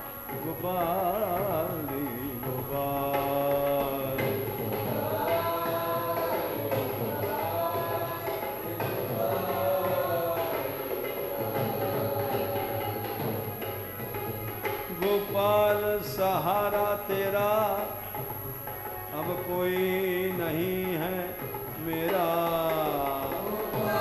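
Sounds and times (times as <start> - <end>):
person singing long notes: 0.0 - 13.5, 19.1 - 24.0
steady drum beats: 0.4 - 18.8, 20.0 - 24.0.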